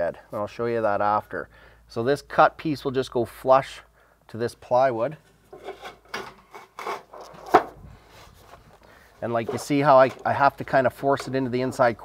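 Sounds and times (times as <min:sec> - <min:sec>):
sheet metal scraping against plywood: 0:05.5 - 0:08.5.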